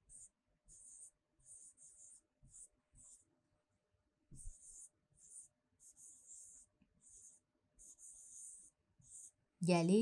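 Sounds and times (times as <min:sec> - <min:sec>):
pen scratching on paper: 0:00.0 - 0:09.6.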